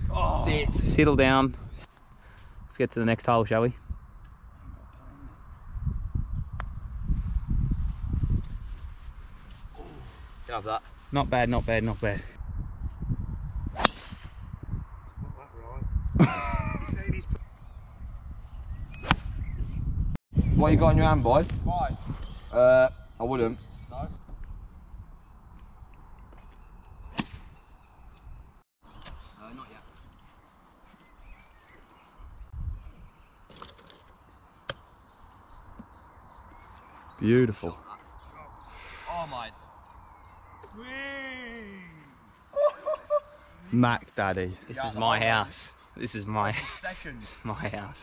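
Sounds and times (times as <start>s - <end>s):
faint outdoor background noise: 0.0s - 13.1s, 21.1s - 48.0s
low rumbling microphone noise: 3.7s - 26.1s.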